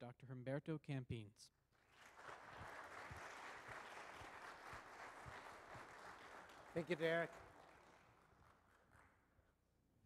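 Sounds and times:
audience applauding: 0:01.9 - 0:09.1.

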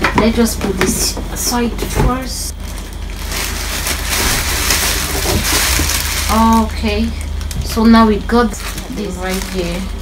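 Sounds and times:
steady low hum: 0:00.0 - 0:10.0
plastic and bubble wrap crinkling: 0:01.4 - 0:10.0.

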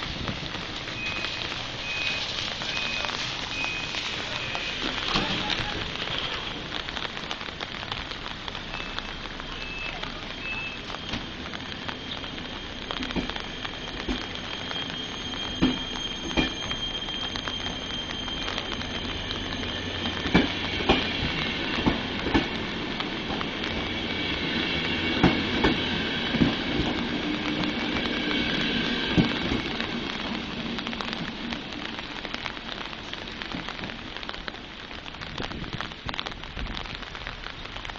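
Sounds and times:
rain hiss: 0:00.0 - 0:37.9
raindrops ticking: 0:00.0 - 0:37.9
train wheels knocking on rail joints: 0:20.2 - 0:22.6, 0:25.2 - 0:27.2.

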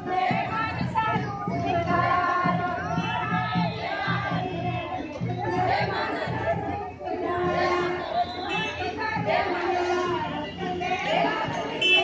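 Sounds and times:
people chattering: 0:03.6 - 0:12.0.

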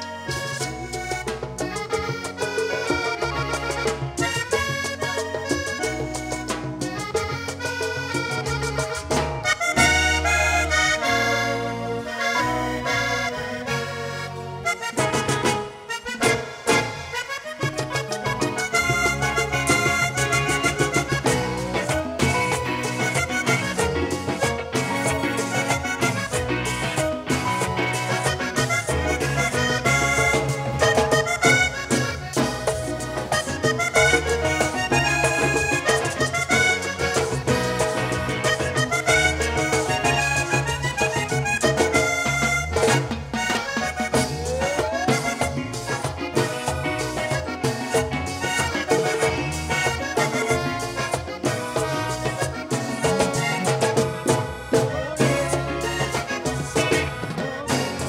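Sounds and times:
bass: 0:00.0 - 0:58.0
button accordion playing fast runs: 0:00.0 - 0:58.0
congas: 0:00.0 - 0:58.0.

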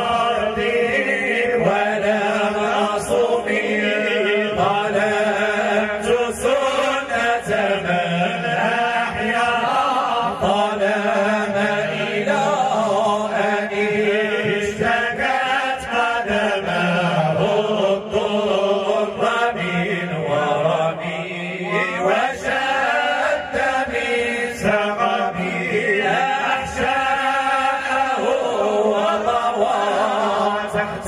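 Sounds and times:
men chanting devotional verses: 0:00.0 - 0:31.0.

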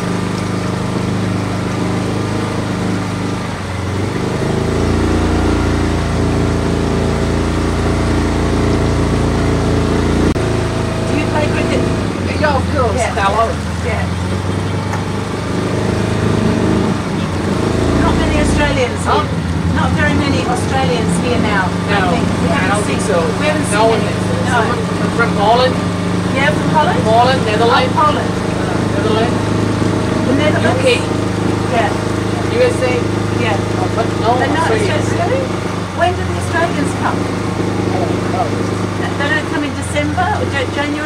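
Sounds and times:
motorboat engine running: 0:00.0 - 0:41.0
indistinct voices talking: 0:00.7 - 0:41.0.

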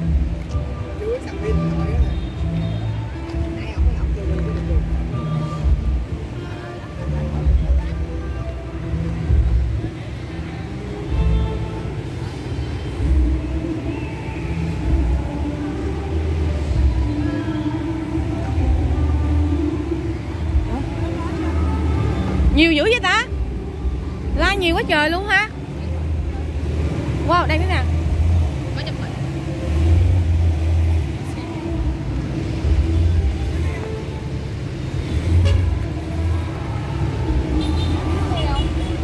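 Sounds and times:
music with heavy bass line: 0:00.0 - 0:09.9, 0:24.3 - 0:25.3
people's voices: 0:00.0 - 0:39.0.

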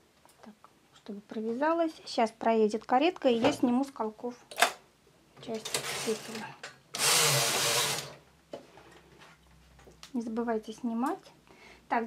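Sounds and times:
knitting machine carriage rasping: 0:07.0 - 0:08.1.

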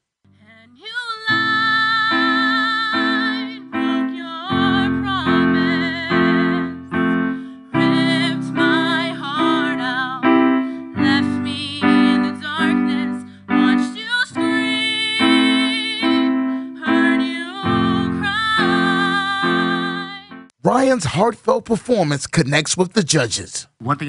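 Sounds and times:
woman singing with vibrato: 0:00.4 - 0:20.4
digital keyboard chords: 0:01.3 - 0:20.6.

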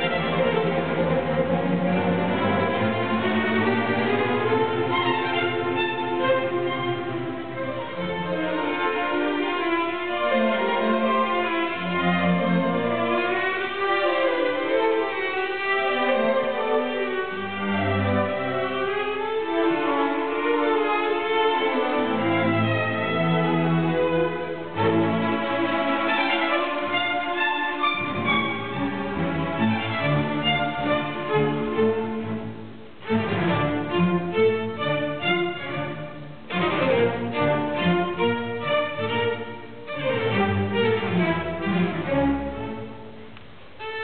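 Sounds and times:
orchestra playing classical music: 0:00.0 - 0:44.0.

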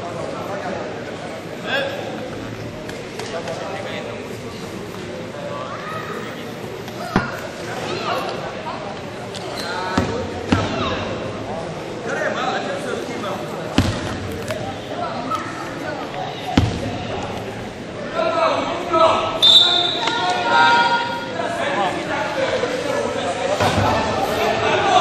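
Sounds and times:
voices talking in echoing hall: 0:00.0 - 0:25.0.

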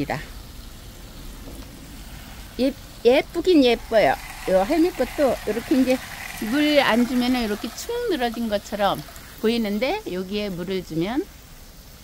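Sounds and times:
water spraying from hose: 0:00.0 - 0:12.0.

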